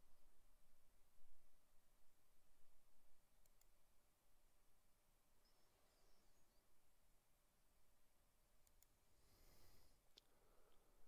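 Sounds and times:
computer mouse clicks: 3.4s - 3.8s, 8.6s - 9.0s.

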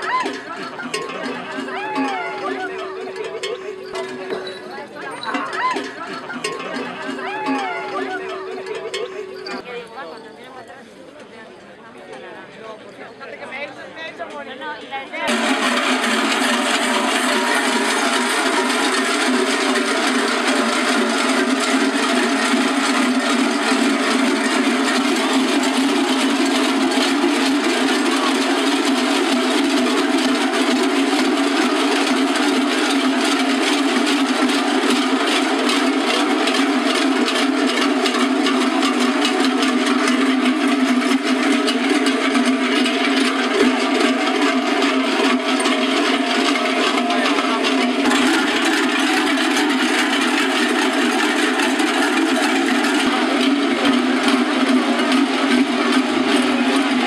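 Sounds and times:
cowbells clanging: 0.0s - 11.4s, 15.2s - 57.0s.

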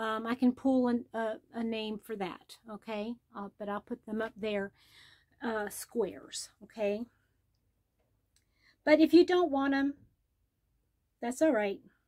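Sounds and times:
woman speaking: 0.0s - 4.8s, 5.4s - 7.1s, 8.9s - 10.0s, 11.2s - 11.8s.

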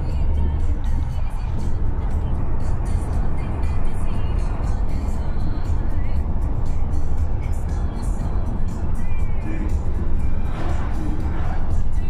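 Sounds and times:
car rumble from inside cabin: 0.0s - 12.0s
music on car radio: 0.0s - 12.0s.

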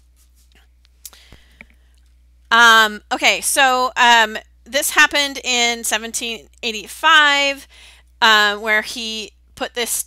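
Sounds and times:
low electrical hum: 0.0s - 10.0s
faint breathing: 1.0s - 2.1s, 7.7s - 8.1s.

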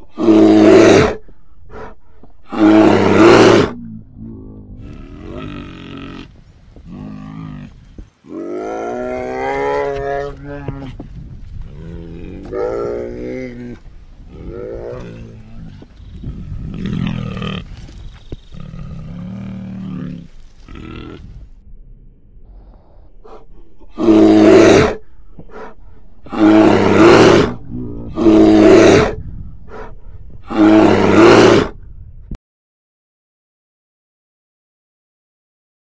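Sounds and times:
bear roaring: 0.1s - 7.7s, 8.3s - 10.9s, 11.7s - 15.8s, 23.0s - 31.8s.

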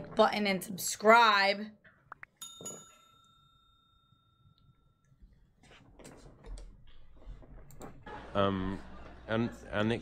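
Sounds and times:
small bell chime: 2.4s - 5.2s.

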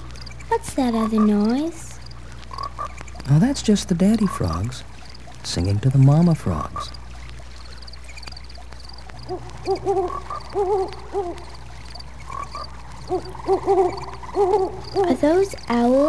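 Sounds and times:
frogs chorus: 0.0s - 16.0s
owls hooting: 0.0s - 16.0s.

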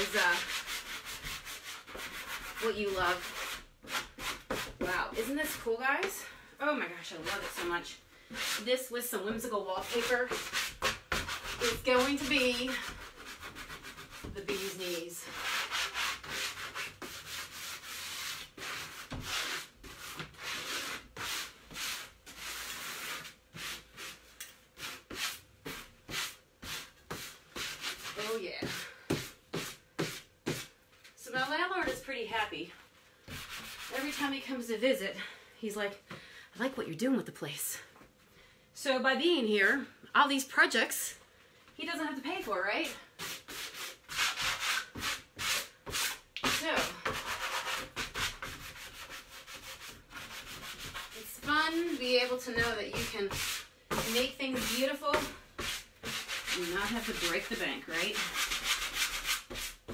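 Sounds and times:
sanding block rubbing on wood: 0.0s - 5.4s, 9.8s - 24.2s, 43.2s - 59.9s.

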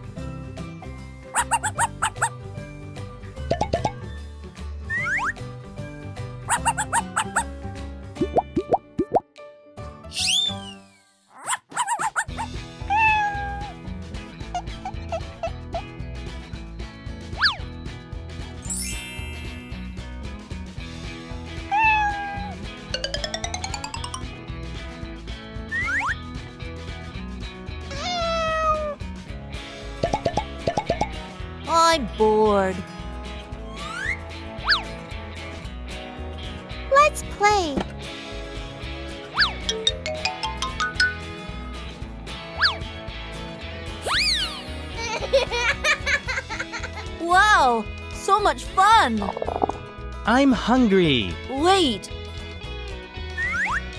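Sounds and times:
light children's music: 0.0s - 53.9s
rising plop sound effects: 3.5s - 4.0s, 8.2s - 9.2s, 23.0s - 24.3s, 30.0s - 31.2s
falling whistle glide: 10.2s - 10.9s
cat meow sound effect: 12.4s - 13.8s, 21.7s - 22.6s, 27.9s - 29.0s.

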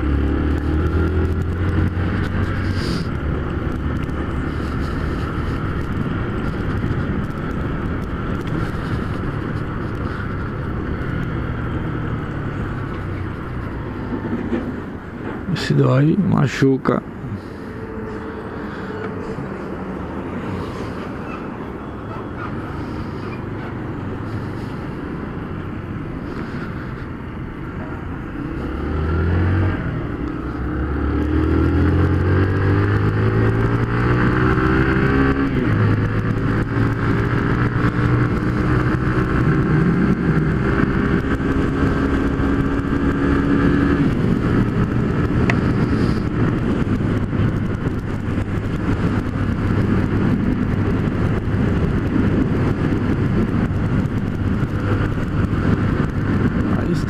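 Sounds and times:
motorcycle engine accelerating: 0.0s - 15.1s, 28.0s - 57.0s.

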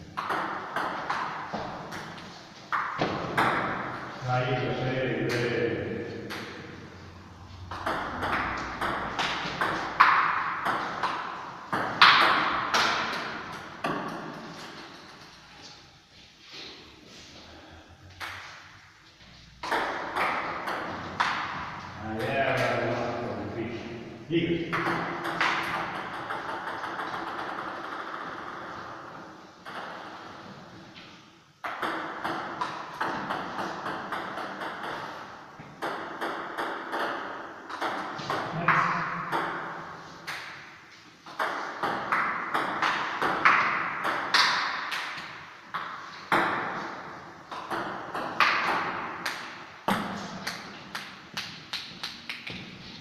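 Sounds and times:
ping pong ball clicking off paddles: 0.1s - 4.0s, 6.2s - 6.8s, 7.7s - 15.4s, 19.6s - 22.9s, 24.7s - 30.3s, 31.6s - 52.8s
ball bouncing on table: 0.2s - 4.0s, 6.3s - 6.6s, 7.7s - 14.8s, 19.6s - 22.8s, 31.6s - 40.6s, 41.2s - 46.9s, 47.5s - 52.8s.

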